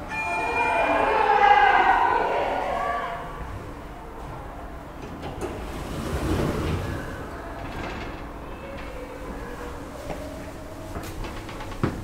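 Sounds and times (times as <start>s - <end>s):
elevator doors sliding open: 4.2s - 9.8s.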